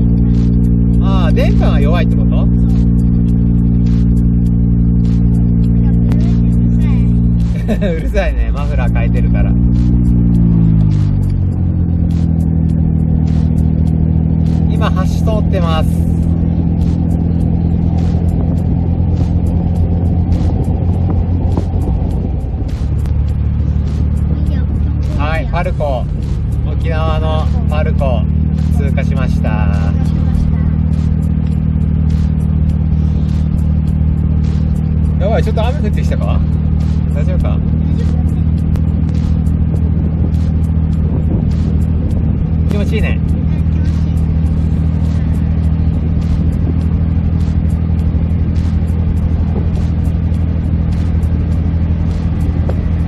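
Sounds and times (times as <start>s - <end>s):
car engine cruising: 0.0s - 53.0s
road noise: 0.0s - 53.0s
wind noise: 0.0s - 53.0s.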